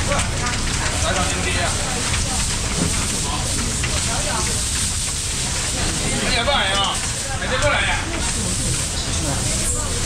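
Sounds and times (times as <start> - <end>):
faint voices: 0.0 - 10.0
steady rain falling: 0.0 - 10.0.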